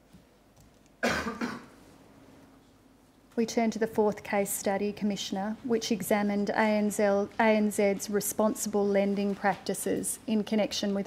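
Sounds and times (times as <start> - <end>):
person coughing: 1.0 - 1.8.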